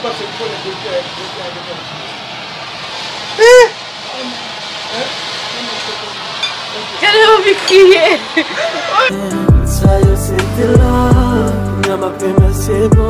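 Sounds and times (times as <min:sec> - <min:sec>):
smoke cannon hissing: 0:00.0 - 0:09.1
excited high cry: 0:03.4 - 0:03.8.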